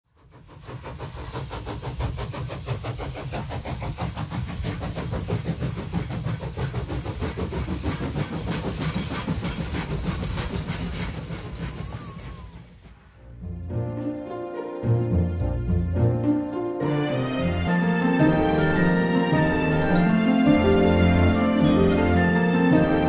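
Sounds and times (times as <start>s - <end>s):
hissing steam: 0.0s - 13.3s
steam locomotive chuffing: 0.0s - 13.4s.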